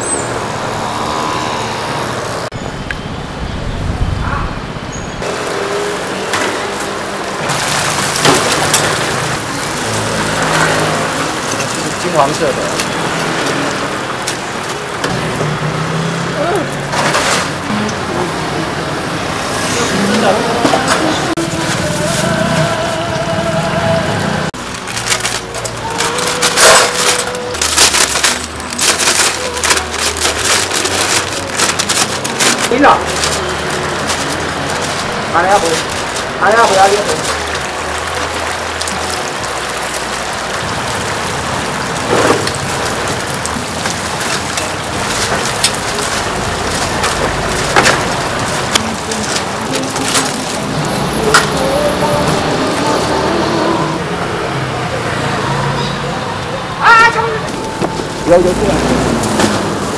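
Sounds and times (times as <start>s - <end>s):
voices: 8.1s - 24.6s, 25.4s - 59.9s.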